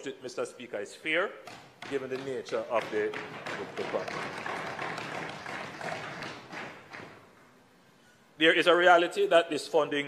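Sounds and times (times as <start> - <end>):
crowd applauding: 3.2 - 7.2.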